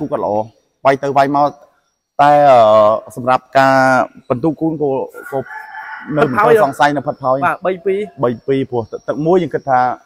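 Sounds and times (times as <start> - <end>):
man speaking: 0.0 - 1.6, 2.2 - 10.0.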